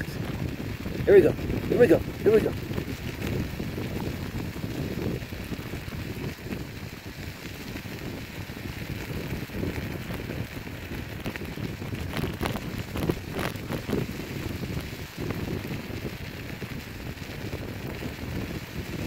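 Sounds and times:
scooter tyres rolling on wet gravel: 0.0 - 19.0
wind rumble on microphone: 0.0 - 19.0.

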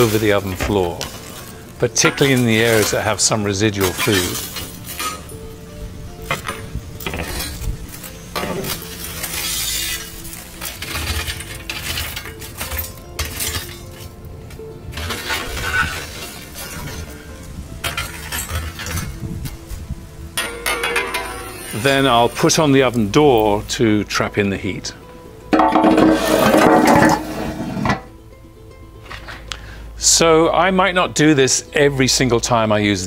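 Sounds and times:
metal tool scraping brick: 0.0 - 5.4, 6.3 - 7.7, 8.4 - 14.1, 14.9 - 17.2, 20.4 - 22.4, 25.6 - 28.1
embers clinking: 0.0 - 19.7, 20.3 - 23.8, 25.4 - 28.2
background music: 0.0 - 33.0.

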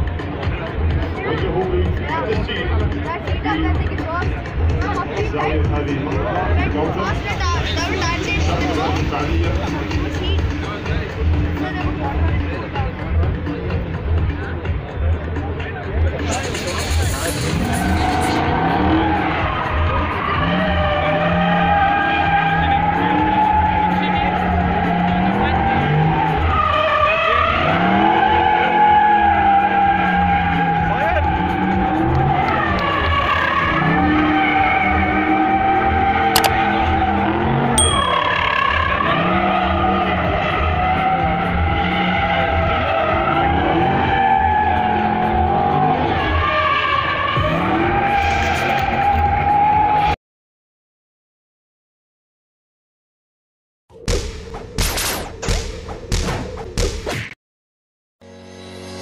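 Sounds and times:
tyres squealing on asphalt: 16.2 - 37.8, 38.4 - 50.2
car engine revving high: 38.5 - 50.1.

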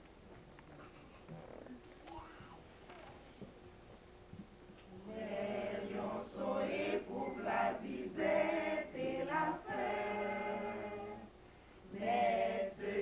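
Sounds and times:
mixed choir singing a cappella: 5.0 - 11.3, 11.9 - 13.0.

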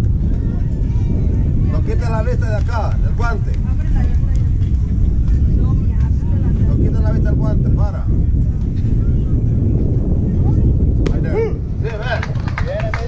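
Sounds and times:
loud low rumble: 0.0 - 12.8.

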